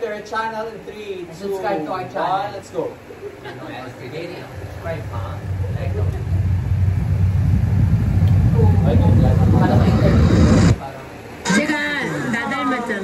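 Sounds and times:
deep low rumble: 4.4 - 10.8.

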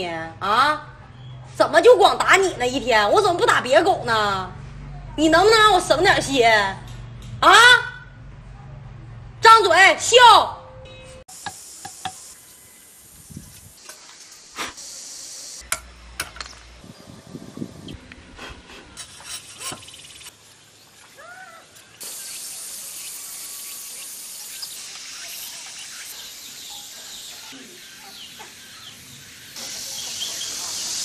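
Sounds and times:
outdoor hiss: 11.3 - 19.0, 19.9 - 31.0.

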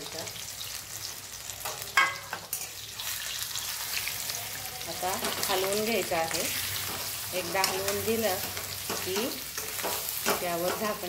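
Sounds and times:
vegetables sizzling in hot oil: 0.0 - 11.0.

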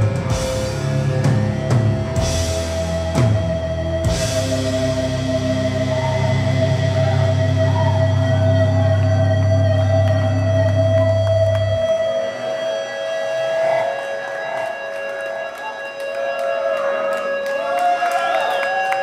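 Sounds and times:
metal band droning chord: 0.0 - 17.5
crowd cheering and clapping: 0.0 - 19.0
guitar feedback tone: 0.0 - 19.0.

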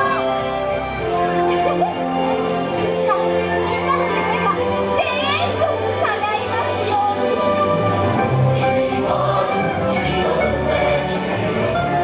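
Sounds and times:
parade music: 0.0 - 12.0.

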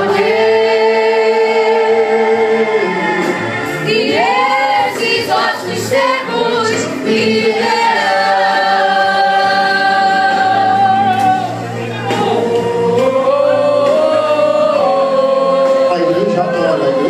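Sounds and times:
women's choir singing gospel: 0.0 - 17.0.

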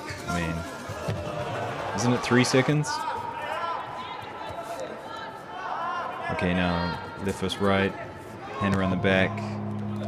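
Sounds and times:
sports hall background noise: 0.0 - 10.0.

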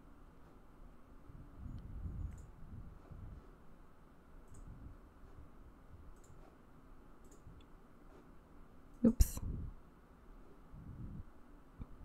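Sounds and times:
computer mouse clicks: 1.8 - 2.6, 4.4 - 4.8, 6.1 - 6.6, 7.2 - 7.7.

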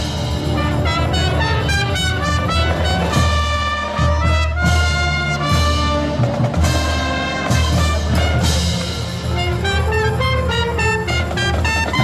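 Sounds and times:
brass and saxophones playing: 0.0 - 12.0.

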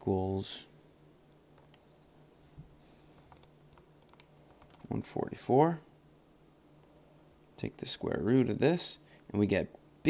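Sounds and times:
man speaking: 0.0 - 0.8, 4.8 - 5.9, 7.6 - 9.8.

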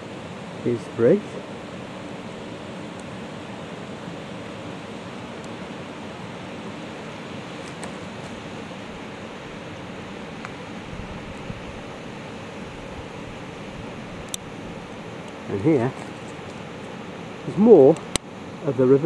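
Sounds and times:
river rushing over rocks: 0.0 - 19.0.

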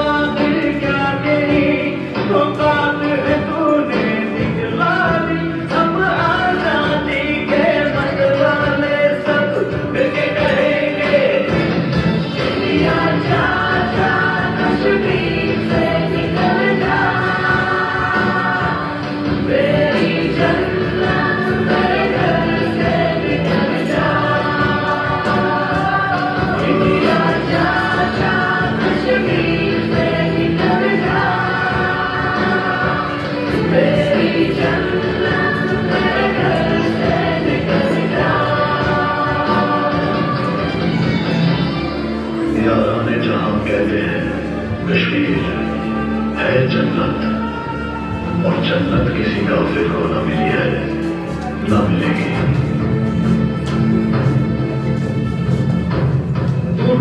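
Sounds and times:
song with singing voices: 0.0 - 57.0.

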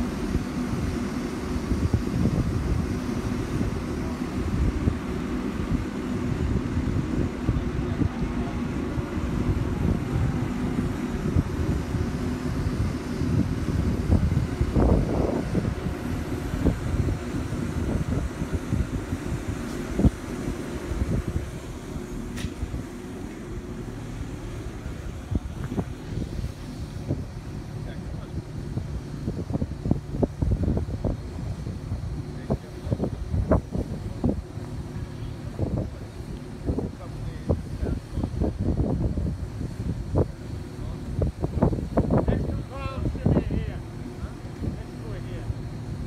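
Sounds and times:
crane engine humming: 0.0 - 46.0
low steady rumble: 0.0 - 46.0
wind buffeting microphone: 0.0 - 46.0.

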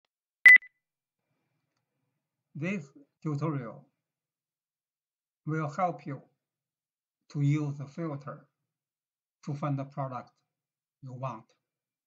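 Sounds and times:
high electronic beep: 0.5 - 0.7.

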